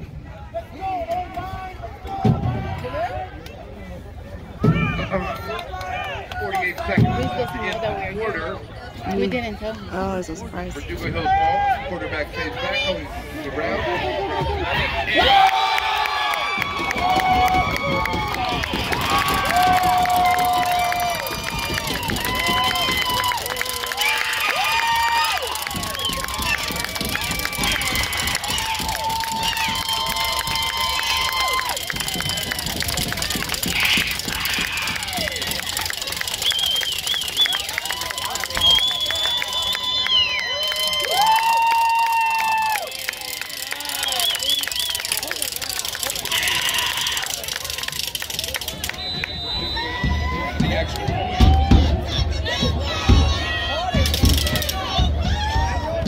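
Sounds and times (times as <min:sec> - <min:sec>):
crowd hubbub: 0:00.0 - 0:56.0
people shouting and calling out: 0:00.3 - 0:36.3, 0:45.2 - 0:48.9, 0:49.6 - 0:56.0.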